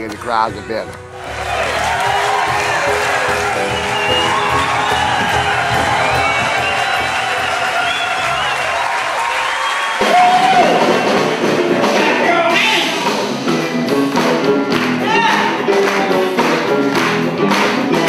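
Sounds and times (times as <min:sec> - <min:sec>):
live music: 0:00.0 - 0:18.0
crowd cheering and applauding: 0:01.0 - 0:18.0.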